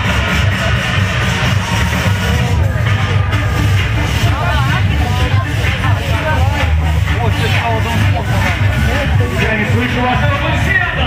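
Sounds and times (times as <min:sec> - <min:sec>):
loud amplified music with heavy bass: 0:00.0 - 0:11.0.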